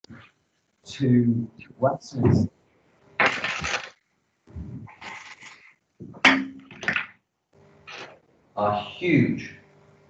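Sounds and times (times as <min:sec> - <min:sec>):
clatter and rustle of objects: 0:03.2 - 0:04.0, 0:04.6 - 0:06.2.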